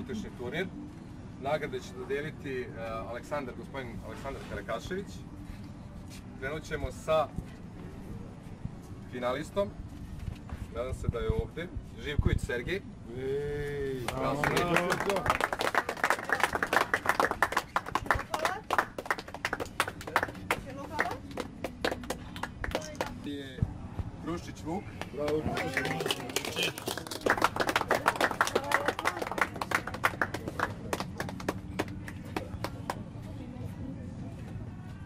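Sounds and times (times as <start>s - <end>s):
crowd applauding: 14.0s - 23.2s, 25.0s - 33.0s.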